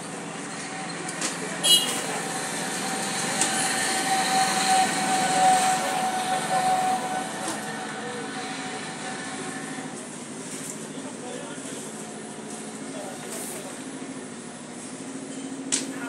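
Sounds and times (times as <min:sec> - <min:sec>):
vehicle noise: 0:00.0 - 0:16.0.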